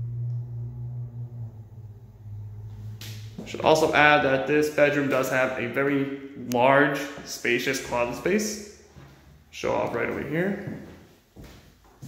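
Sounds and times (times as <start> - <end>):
steady low hum: 0.0 - 11.3.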